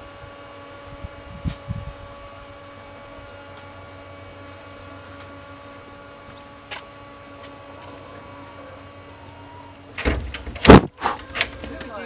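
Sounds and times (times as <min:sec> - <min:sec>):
low background hum: 0:00.0 - 0:12.0
faint steady tones: 0:02.0 - 0:10.6.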